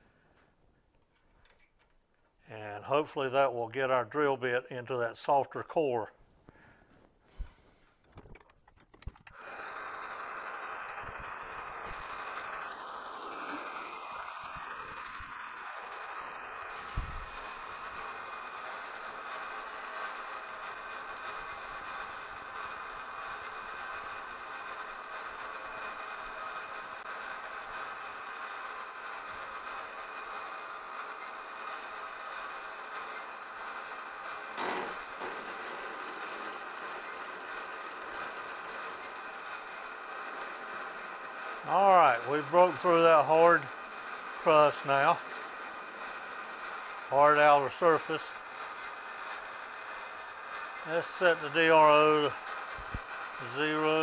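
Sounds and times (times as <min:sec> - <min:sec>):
metal lathe whine: 0:09.5 - 0:41.5.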